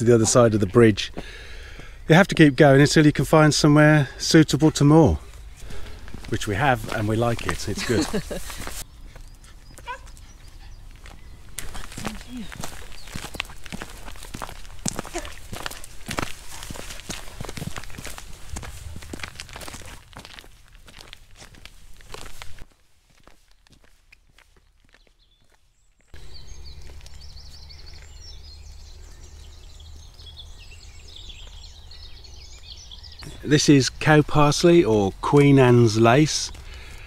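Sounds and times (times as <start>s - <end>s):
small birds chirping: 0.0s - 19.1s, 23.2s - 37.0s
footsteps crunching on gravel: 5.6s - 10.3s, 10.9s - 30.3s, 35.3s - 37.0s
wind rumble on microphone: 17.6s - 20.2s.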